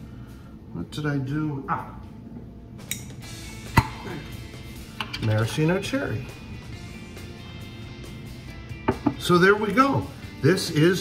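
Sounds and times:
glass jar knock: 8.8 - 9.3.

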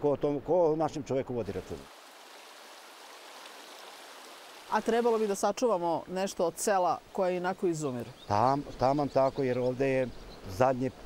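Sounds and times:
stream running over rocks: 1.4 - 9.0.

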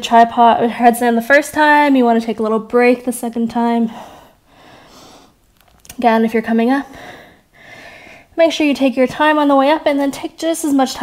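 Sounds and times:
person soft breath: 3.9 - 5.4, 6.9 - 8.3.

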